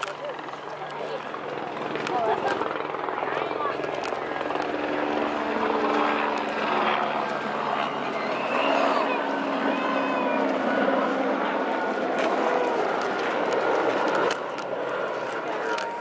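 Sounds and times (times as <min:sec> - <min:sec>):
low motor drone: 0:00.0 - 0:16.0
people talking: 0:00.0 - 0:16.0.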